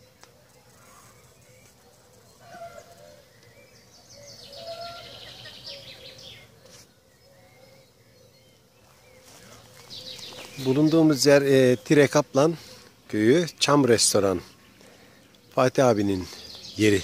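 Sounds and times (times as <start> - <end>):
songbirds singing: 0.0 - 17.0.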